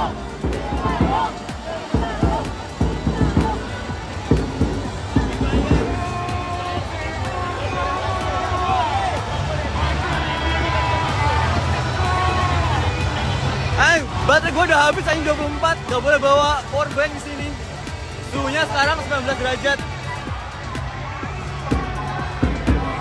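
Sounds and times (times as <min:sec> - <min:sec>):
low thumps: 0:00.0 - 0:06.5
crowd voices calling and talking: 0:00.0 - 0:23.0
music: 0:00.0 - 0:23.0.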